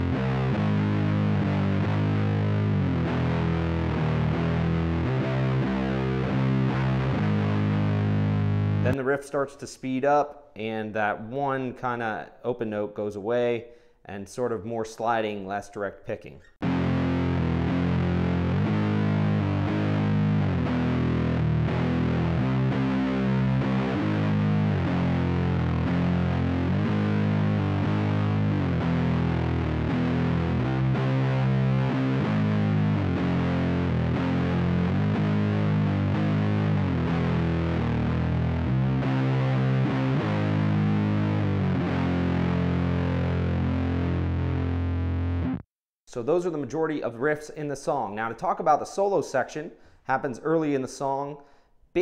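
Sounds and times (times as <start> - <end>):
distorted electric guitar riff: 0.0 - 9.0, 16.6 - 45.7.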